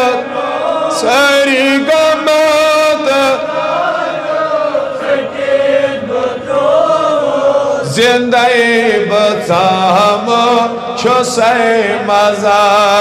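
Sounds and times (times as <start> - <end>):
man chanting into microphone: 0.0 - 3.7, 7.5 - 13.0.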